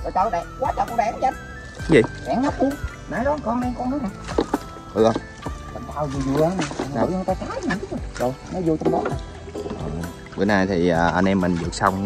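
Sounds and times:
background music: 0.0 - 12.0
men talking: 0.0 - 12.0.

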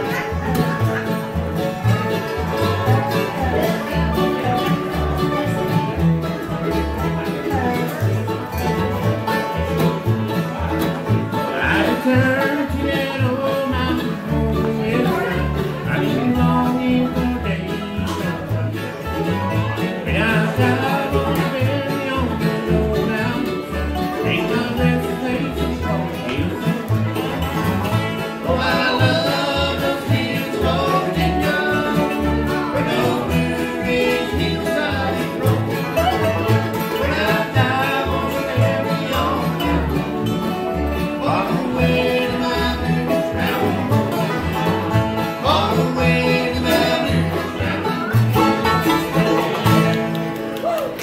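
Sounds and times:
bluegrass band playing: 0.0 - 51.0
upright bass: 0.0 - 51.0.

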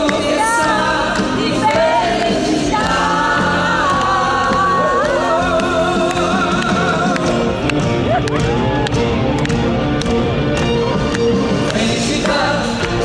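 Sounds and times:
woman singing with vibrato: 0.0 - 7.2
backing vocals: 0.0 - 8.4
band playing pop song: 0.0 - 13.0.

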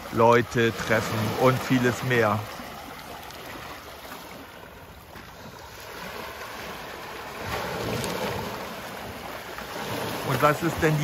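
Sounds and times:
sea waves breaking over rocks: 0.0 - 11.0.

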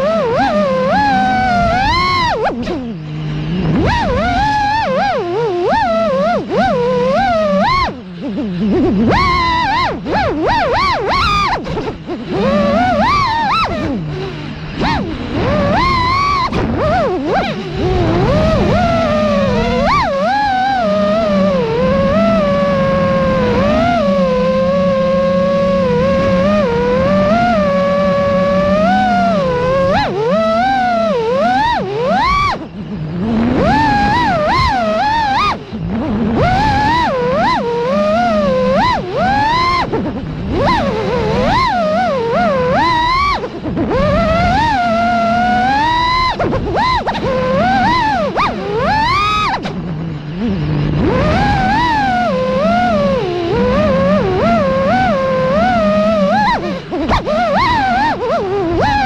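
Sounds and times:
drone motors and propellers whining: 0.0 - 59.0.

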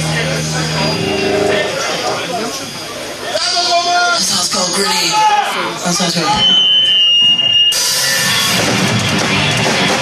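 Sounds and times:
distorted electric guitars: 0.0 - 4.8, 6.0 - 10.0
high feedback whine: 0.0 - 5.1, 5.8 - 10.0
drum kit: 7.1 - 10.0.

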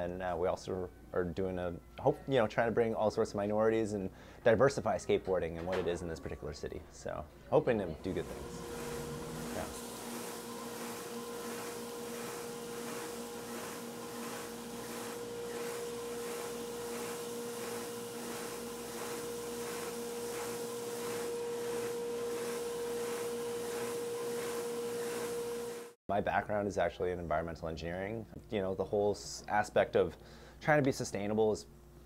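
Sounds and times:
sander humming: 7.7 - 26.0.

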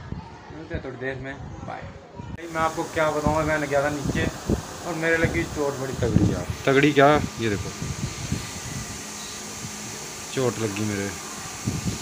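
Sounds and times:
room fan running: 2.4 - 12.0.

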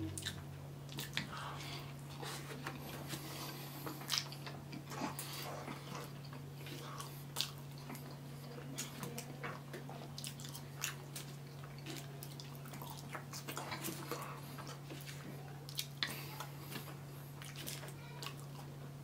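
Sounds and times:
close chewing with mouth smacks: 0.0 - 18.8.

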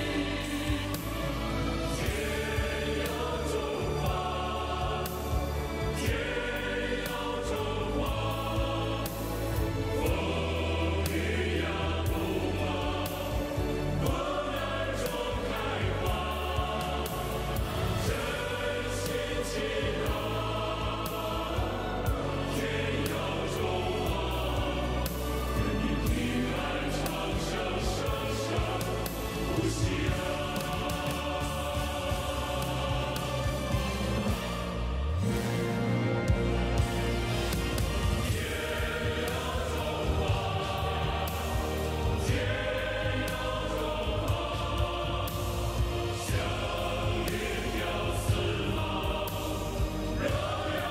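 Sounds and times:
choir singing with instruments: 0.0 - 50.9.

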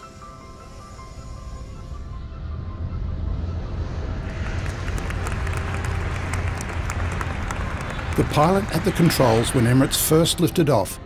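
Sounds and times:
steady low hum: 0.0 - 9.6
background music: 0.0 - 11.0
crowd applauding: 4.3 - 10.4.

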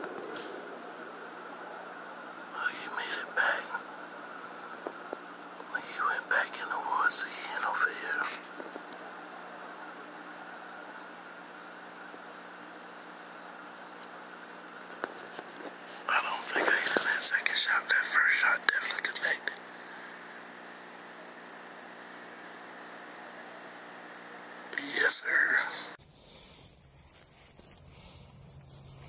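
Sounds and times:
constant hiss: 0.0 - 29.0
night insects droning: 0.0 - 29.0
steady high-pitched hum: 0.0 - 29.0
person whispering: 2.5 - 3.8, 5.7 - 8.4, 16.0 - 19.6, 24.7 - 26.0.

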